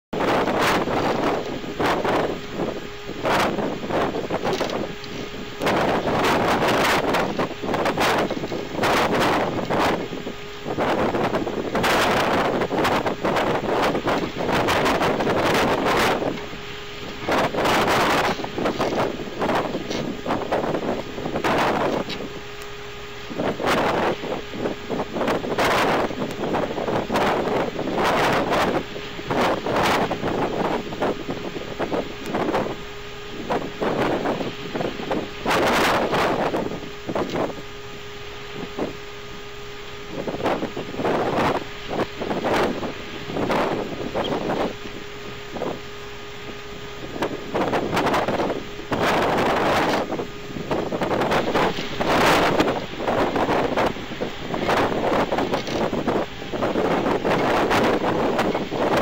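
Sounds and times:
wind buffeting microphone: 0.1s - 59.0s
faint steady hum: 0.2s - 59.0s.

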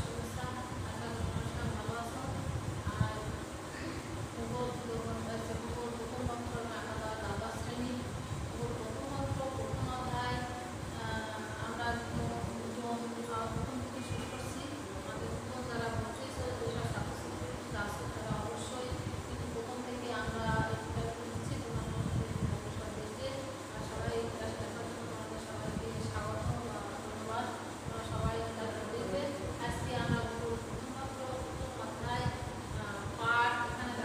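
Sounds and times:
low buzzing hum: 0.0s - 34.0s
woman speaking: 0.0s - 34.0s.

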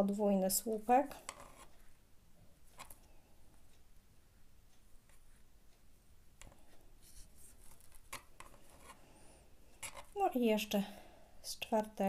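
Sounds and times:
crochet hook scratchy rubbing: 1.2s - 1.9s, 7.0s - 9.0s, 9.8s - 10.3s.

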